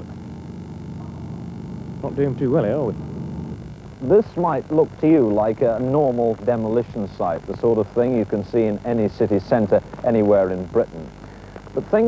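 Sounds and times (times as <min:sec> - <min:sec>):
electrical mains hum: 0:00.0 - 0:12.0
faint hiss: 0:00.0 - 0:12.0.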